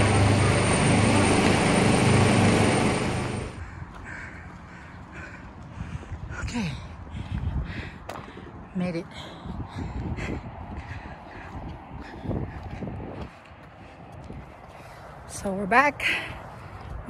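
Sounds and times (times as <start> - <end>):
footsteps on dirt trail: 3.6 - 15.7.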